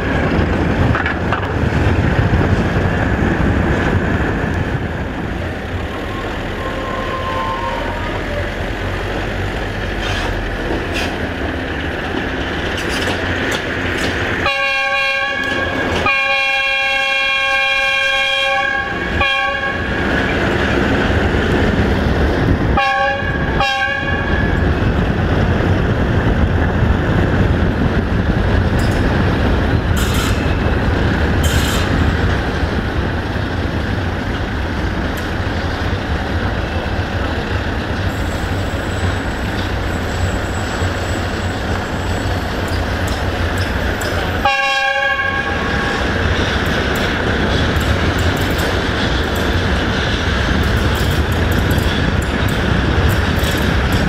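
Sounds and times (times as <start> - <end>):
low rumble and road noise: 0.0 - 54.0
locomotive horn blasts: 6.6 - 8.4, 14.4 - 19.9, 22.8 - 24.4, 44.4 - 45.8.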